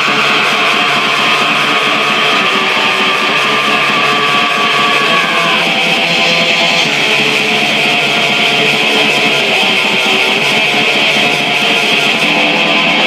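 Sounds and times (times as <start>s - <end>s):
distorted electric guitar: 0.0s - 13.0s.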